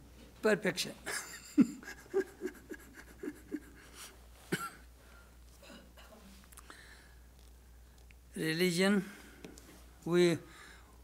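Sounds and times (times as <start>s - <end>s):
man chuckling softly: 1.1s - 4.9s.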